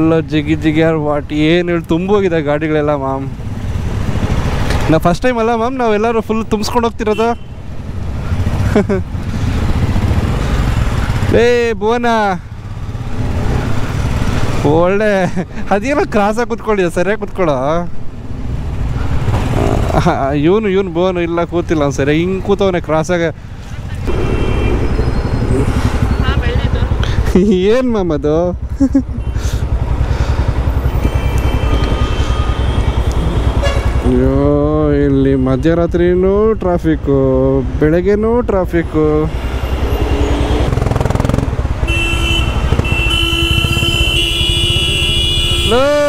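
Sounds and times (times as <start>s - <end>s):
motorcycle engine running: 24.0s - 34.9s, 39.7s - 46.0s.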